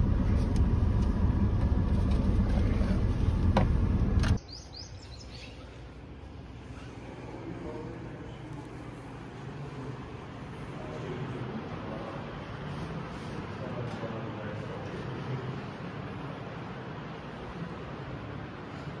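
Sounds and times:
car engine rumble inside cabin: 0:00.0 - 0:04.4
open-air hush: 0:04.4 - 0:19.0.

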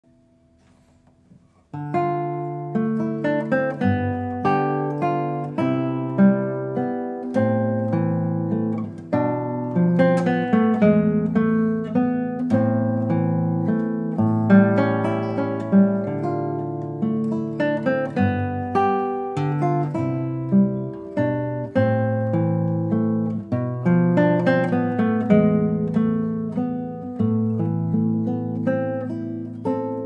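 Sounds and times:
fingerstyle classical guitar: 0:00.1 - 0:30.0.

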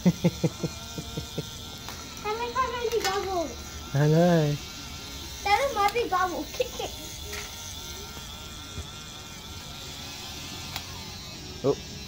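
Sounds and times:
toy bubble gun motor whirring: 0:00.0 - 0:12.0.

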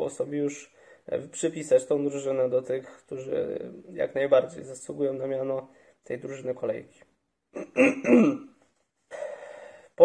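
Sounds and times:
man speaking: 0:00.0 - 0:07.9
sharp intake of breath: 0:09.1 - 0:10.0.

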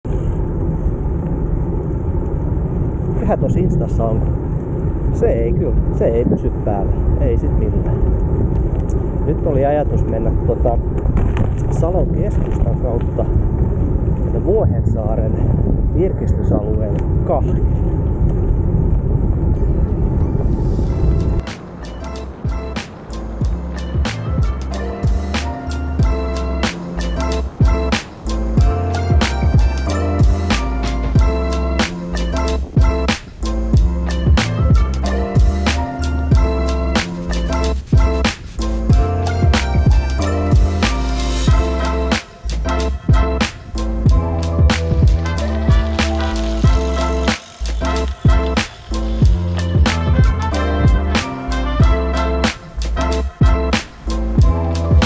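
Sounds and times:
wind buffeting microphone: 0:00.0 - 0:55.0
tyre rumble on asphalt: 0:10.8 - 0:14.3
music with steady beat: 0:20.9 - 0:55.0.

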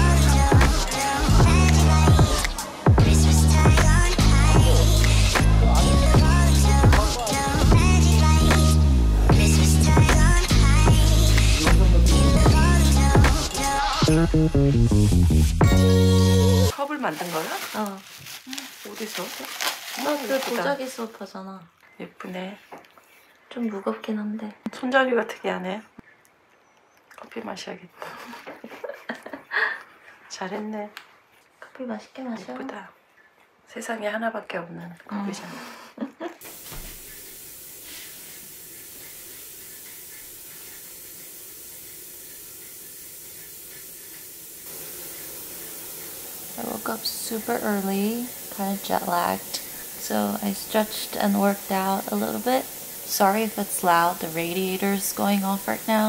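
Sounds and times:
steam radiator hissing: 0:00.0 - 0:16.8, 0:36.4 - 0:56.0
bubble wrap crinkling: 0:16.7 - 0:21.3
voices talking: 0:46.6 - 0:56.0.

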